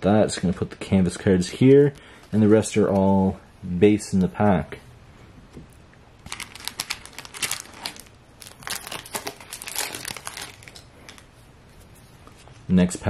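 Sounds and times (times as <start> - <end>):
foil wrapper crinkling: 6.2 - 11.3.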